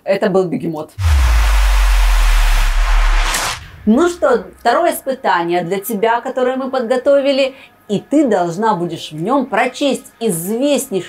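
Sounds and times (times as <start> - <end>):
deep bass rumble: 1.0 - 4.9
loud whoosh: 1.0 - 5.0.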